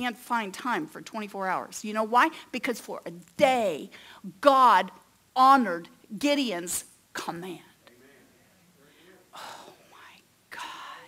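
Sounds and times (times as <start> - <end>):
person whispering: 9.3 - 11.0.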